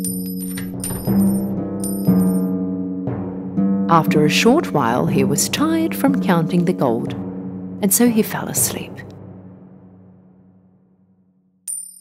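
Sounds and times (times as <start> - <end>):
coins clinking: 0.0 - 2.5, 11.7 - 12.0
background music low held notes: 0.0 - 11.3.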